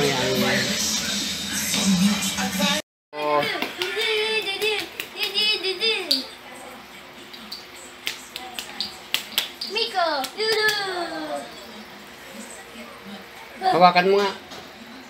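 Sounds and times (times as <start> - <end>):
child's voice: 3.3 - 6.8, 9.7 - 11.7.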